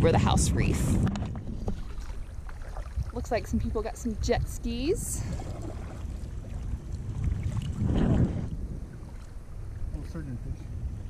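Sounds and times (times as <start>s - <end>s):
wind rumbling on microphone: 0.0s - 11.0s
paddle splashes: 0.9s - 3.9s, 4.9s - 9.9s
kayak knocks: 1.0s - 3.1s.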